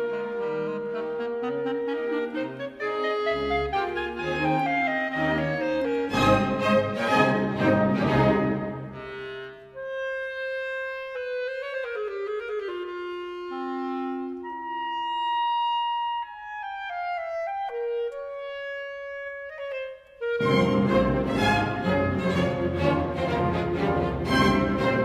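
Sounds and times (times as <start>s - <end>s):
orchestra playing: 0.0s - 9.8s, 20.2s - 25.0s
clarinet and basset horn duet: 0.0s - 22.3s.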